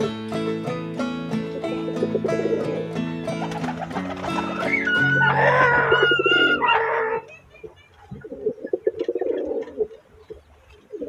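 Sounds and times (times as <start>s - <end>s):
background music: 0.0s - 7.3s
pigeon cooing: 1.6s - 7.3s, 8.2s - 10.0s.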